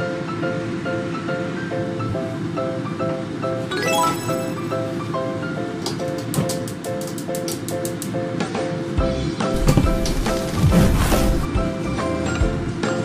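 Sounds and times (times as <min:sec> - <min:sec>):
background music repeated notes: 0:03.7 - 0:10.2.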